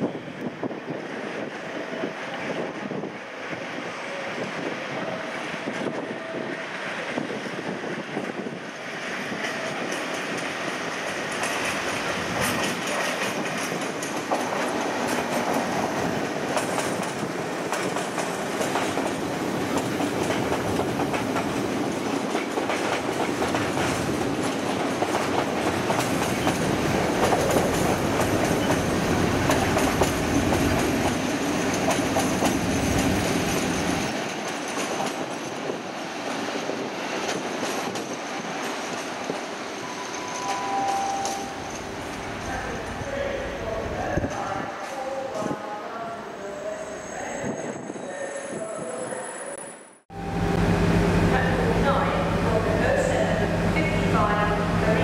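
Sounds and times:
train wheels clattering: 0:09.3 - 0:43.1
diesel locomotive engine: 0:50.1 - 0:55.0.

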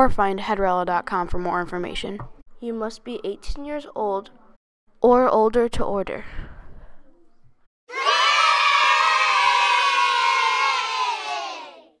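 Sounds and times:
children cheering and shouting: 0:07.9 - 0:12.0.

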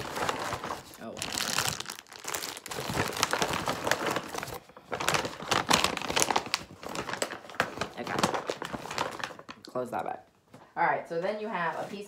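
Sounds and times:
plastic and paper crinkling: 0:00.0 - 0:09.7.

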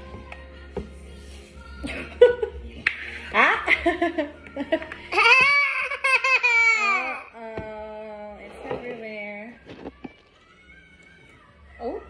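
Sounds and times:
toddler laughing: 0:05.1 - 0:07.3.

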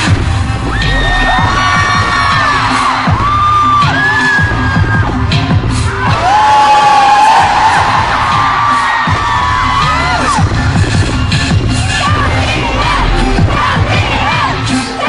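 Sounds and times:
crowd screaming and shrieking: 0:00.0 - 0:15.0
pop music with heavy beat: 0:00.0 - 0:15.0.

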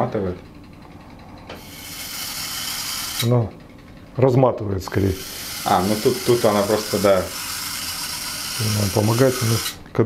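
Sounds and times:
motorized holder whirring: 0:00.5 - 0:04.1, 0:04.8 - 0:10.0.

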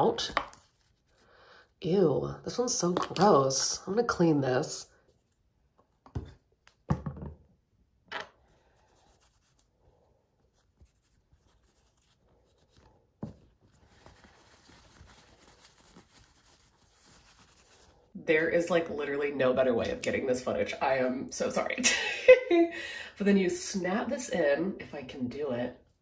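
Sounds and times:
small items knocking on counter: 0:06.1 - 0:07.5.

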